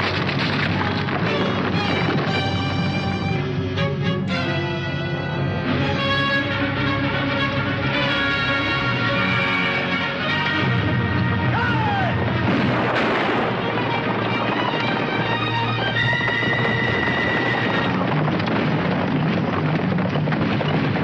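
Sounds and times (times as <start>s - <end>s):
film score music: 0.0s - 21.0s
battle sounds: 10.1s - 16.2s
sharp gunshots: 12.4s - 21.0s.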